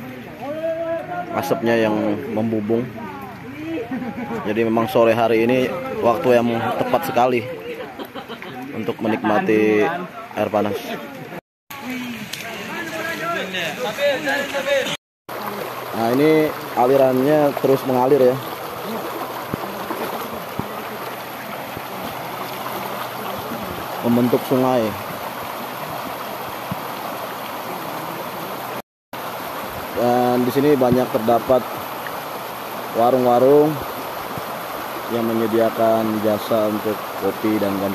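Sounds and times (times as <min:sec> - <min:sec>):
men talking and calling out: 0:00.0 - 0:37.9
stream rushing over rocks: 0:08.7 - 0:37.9.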